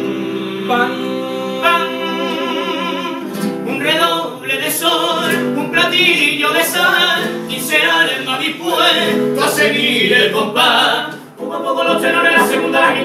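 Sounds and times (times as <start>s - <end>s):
acoustic guitar: 0.0s - 13.0s
male vocal quartet singing: 0.0s - 13.0s.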